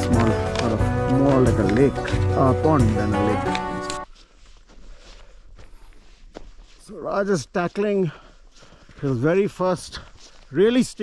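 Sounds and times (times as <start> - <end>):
person speaking: 0.0 - 4.1
snowshoe footsteps in snow: 0.0 - 11.0.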